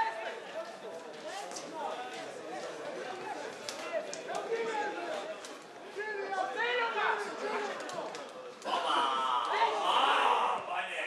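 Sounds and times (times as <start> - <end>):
voices calling and shouting: 2.7 - 11.0.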